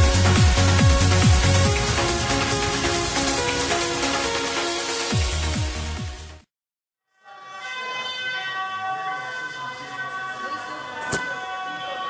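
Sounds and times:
bells ringing: 0:07.3 - 0:12.0.

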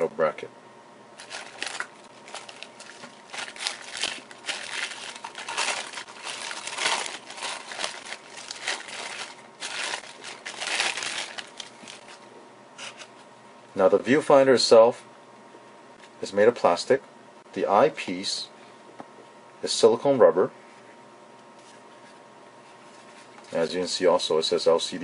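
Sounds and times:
plastic zip bag crinkling: 0:01.2 - 0:12.2.

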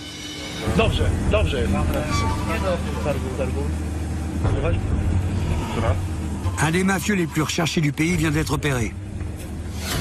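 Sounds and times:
men talking: 0:00.6 - 0:09.0
vehicle engine rumble: 0:00.6 - 0:10.0.

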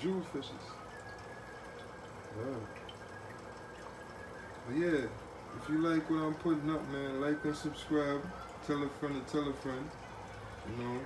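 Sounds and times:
aquarium filter water trickling: 0:00.0 - 0:11.0.

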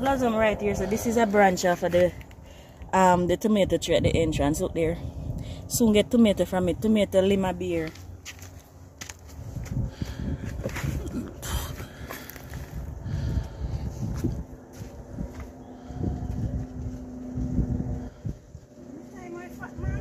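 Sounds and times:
wind rumbling: 0:00.0 - 0:20.0.

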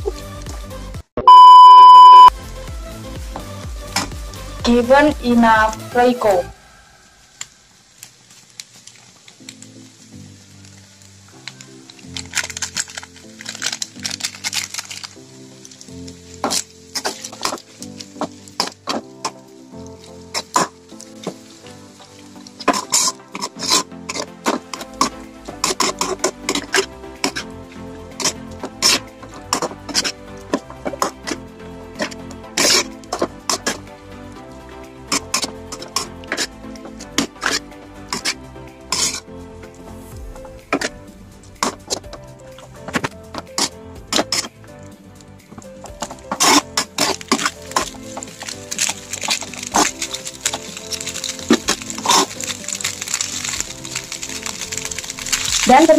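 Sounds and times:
background music: 0:00.0 - 0:01.4, 0:02.2 - 0:55.9.

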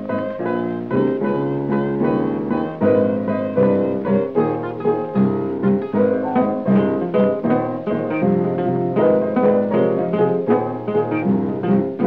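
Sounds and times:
acoustic guitar: 0:00.0 - 0:12.0
piano: 0:00.0 - 0:12.0.

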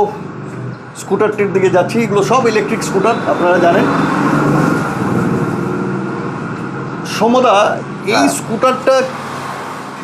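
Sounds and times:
motor vehicle noise: 0:00.0 - 0:10.0.

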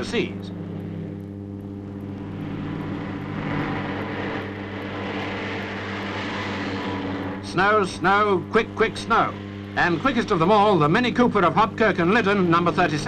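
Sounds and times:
rally car engine droning: 0:00.0 - 0:13.0.

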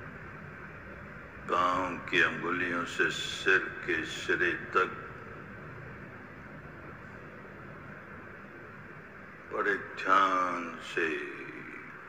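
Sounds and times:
faint low hum: 0:00.0 - 0:12.0
steady hiss: 0:00.0 - 0:12.0.

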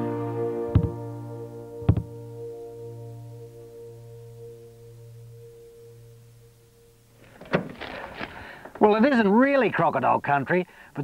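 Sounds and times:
held ringing chord: 0:00.0 - 0:07.3.

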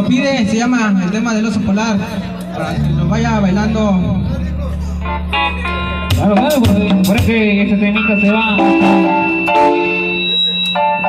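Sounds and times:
steady low bass note: 0:01.1 - 0:10.3
electronic keyboard chords: 0:02.4 - 0:11.0.

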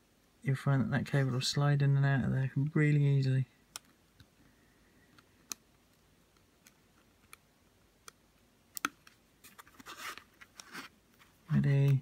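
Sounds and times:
small sharp connector clicks: 0:08.0 - 0:09.2
scratchy rustling of cable: 0:09.0 - 0:12.0.

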